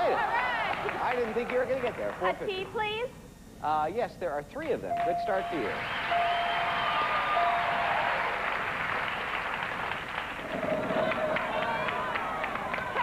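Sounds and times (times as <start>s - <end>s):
studio audience applauding: 0.0s - 2.4s, 5.3s - 13.0s
short chime: 4.9s - 6.8s, 7.4s - 8.1s.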